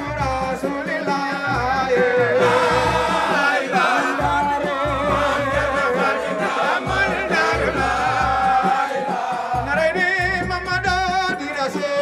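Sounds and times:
men chanting together: 2.0s - 10.0s.

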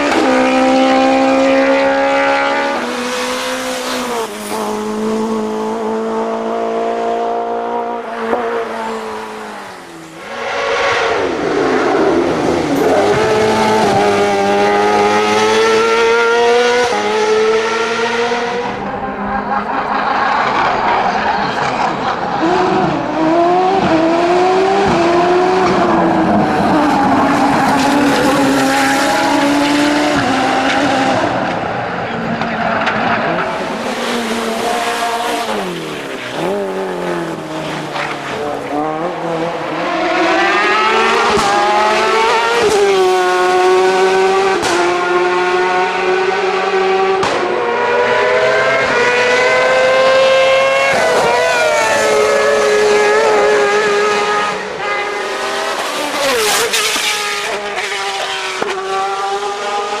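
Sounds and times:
race car engines at full throttle: 0.0s - 60.0s.

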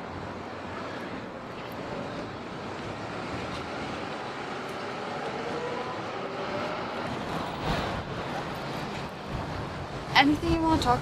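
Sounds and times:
road traffic noise: 0.0s - 11.0s
vehicle engine tone rising: 2.2s - 9.8s.

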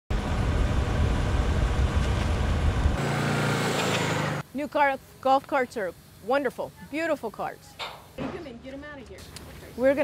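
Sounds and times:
vehicle engine rumble: 0.1s - 5.2s.

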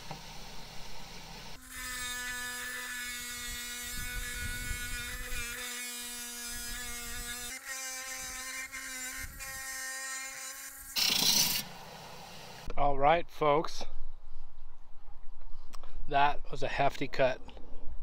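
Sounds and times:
wet tile saw grinding stone: 1.6s - 11.7s.

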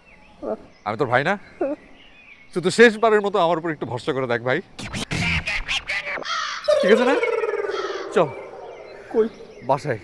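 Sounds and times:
men wailing comically: 6.7s - 8.7s.

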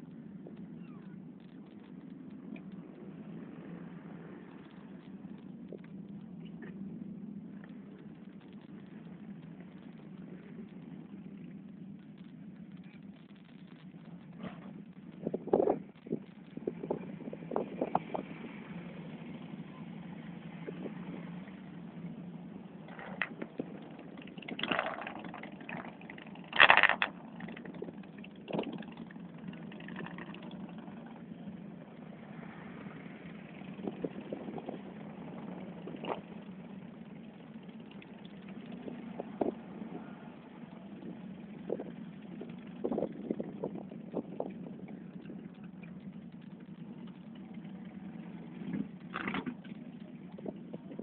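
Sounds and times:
engine idling: 0.0s - 51.0s.

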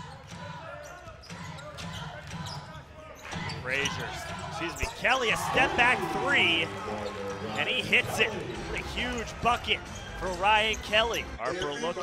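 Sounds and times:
shoe squeaks: 0.1s - 5.2s.

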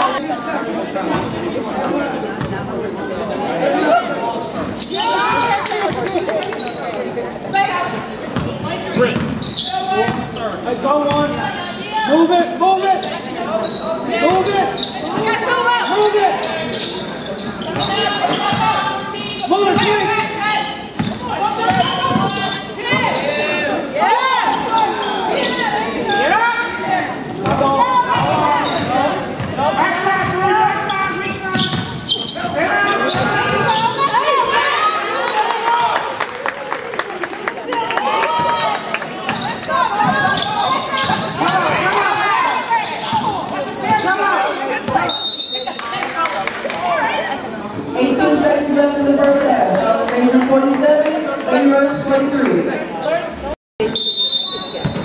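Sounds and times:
voices calling out: 3.0s - 36.1s, 37.4s - 55.0s.

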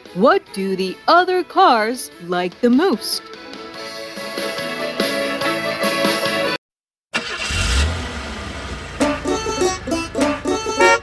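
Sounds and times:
background music: 0.0s - 6.6s, 9.0s - 11.0s
upbeat plucked-string music: 0.0s - 6.6s, 9.0s - 11.0s
car engine idling: 7.2s - 11.0s.

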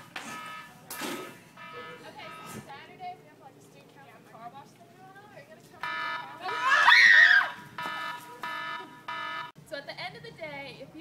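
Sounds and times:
electronic alarm buzzer blasts: 0.0s - 2.7s, 5.8s - 6.9s, 7.7s - 9.6s.

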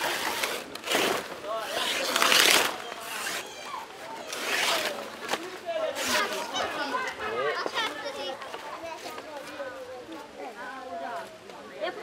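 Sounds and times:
leaves being torn: 0.0s - 3.6s, 4.2s - 5.4s
women chatting: 6.0s - 12.0s.

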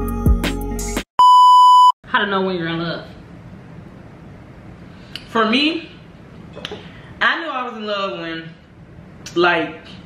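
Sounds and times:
music with deep bass and kick drum: 0.0s - 1.0s
high-pitched electronic beep: 1.2s - 2.0s.

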